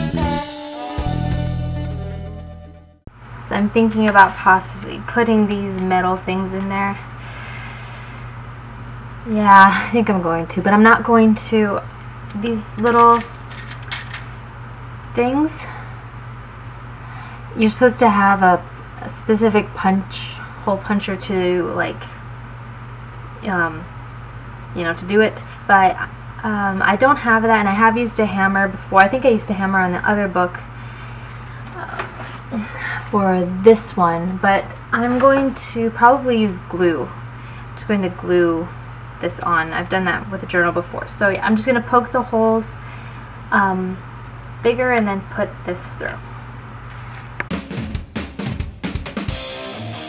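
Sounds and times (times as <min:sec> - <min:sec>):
low background hum: 0:03.0 - 0:47.5
person breathing out: 0:07.2 - 0:08.4.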